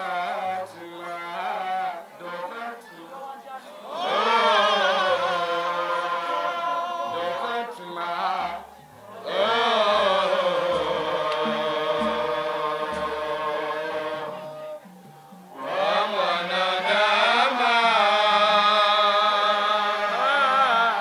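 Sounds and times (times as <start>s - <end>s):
man singing through a microphone: 0.0s - 14.9s, 15.6s - 21.0s.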